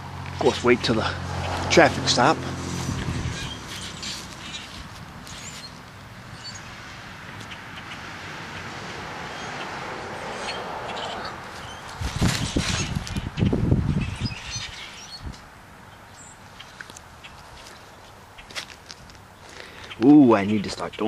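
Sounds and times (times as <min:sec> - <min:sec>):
passing traffic hiss: 0:00.0 - 0:12.6
blackbirds chirping: 0:00.3 - 0:21.0.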